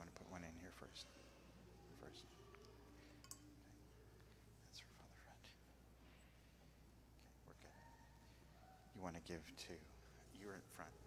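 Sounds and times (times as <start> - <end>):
faint whispering: 0.0 - 11.0
steady low hum: 0.0 - 11.0.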